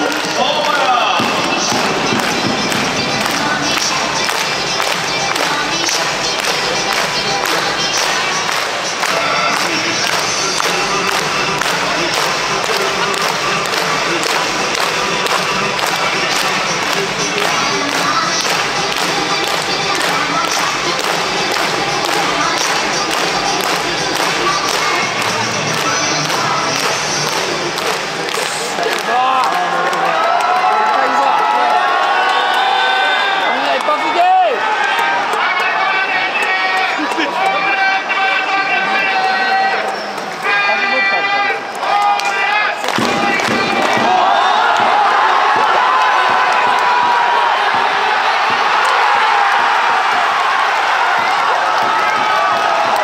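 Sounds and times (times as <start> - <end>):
crowd chanting and singing: 0.0 - 53.0
steady drumbeat: 0.2 - 29.7, 42.9 - 53.0.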